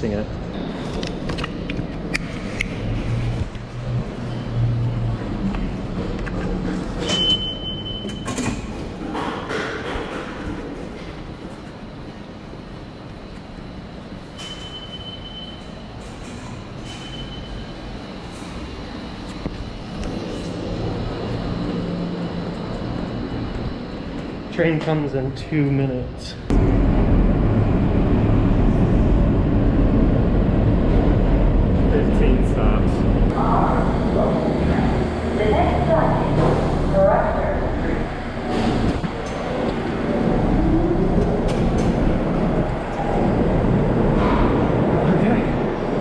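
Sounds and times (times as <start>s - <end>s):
low rumble of trains: 0.0s - 46.0s.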